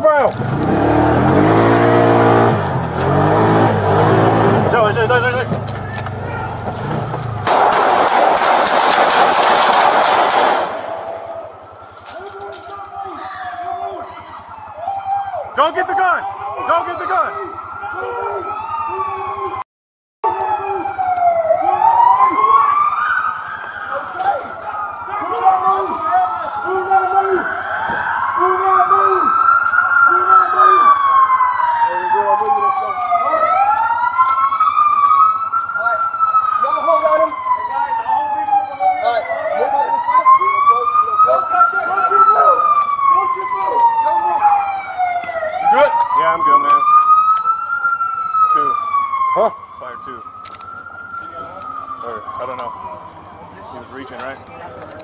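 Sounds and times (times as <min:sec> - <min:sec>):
emergency sirens wailing: 0:00.0 - 0:55.0.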